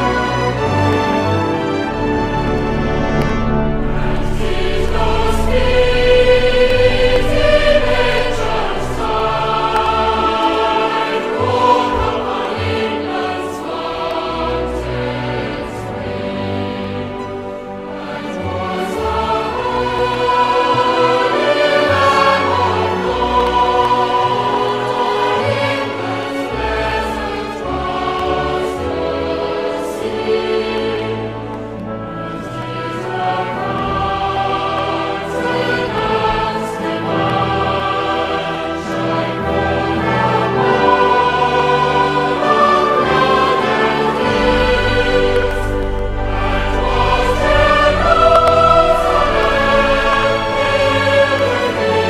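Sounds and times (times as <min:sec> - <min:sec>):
choir singing held chords: 0:00.0 - 0:52.0
orchestra: 0:00.0 - 0:52.0.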